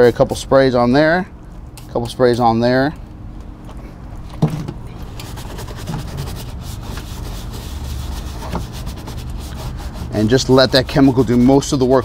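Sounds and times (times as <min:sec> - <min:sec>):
stiff brush scrubbing a tire: 0:05.0 - 0:12.0.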